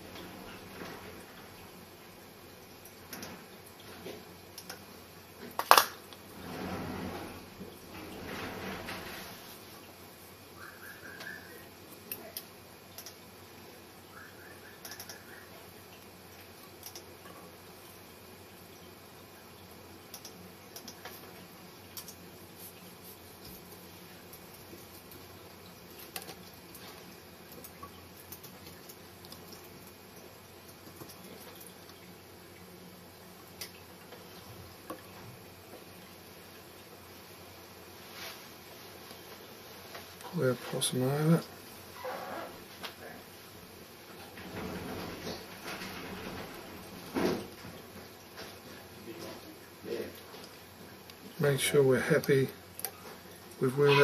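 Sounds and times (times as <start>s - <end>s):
steady background hiss: 0.0s - 54.0s
small clicks and taps: 4.1s - 6.2s, 12.1s - 13.2s, 14.8s - 15.2s, 16.7s - 17.4s, 20.1s - 22.2s, 26.0s - 29.6s.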